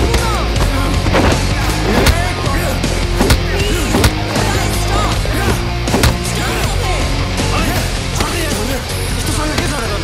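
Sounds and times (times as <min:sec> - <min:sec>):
sharp hits: 0:05.4 - 0:06.5.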